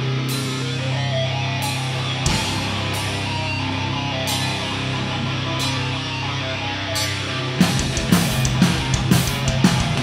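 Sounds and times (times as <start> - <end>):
metal band playing live: 0.0 - 10.0.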